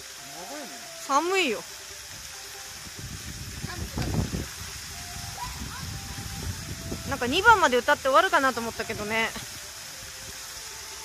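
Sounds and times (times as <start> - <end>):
faint music: 0.0 - 11.0
fountain water jets hissing: 0.0 - 11.0.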